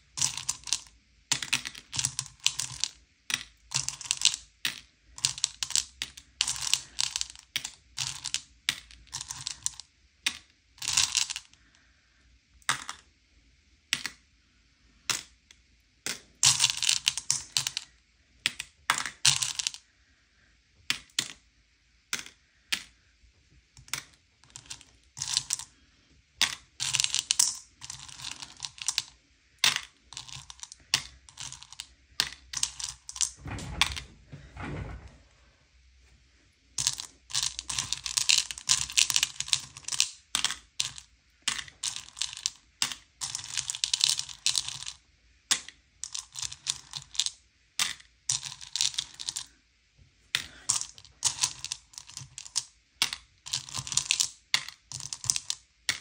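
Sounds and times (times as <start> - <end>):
candies clicking in a bowl: 0.2 - 11.5, 16.0 - 19.8, 23.8 - 25.7, 26.4 - 33.4, 36.8 - 49.5, 50.4 - 56.0.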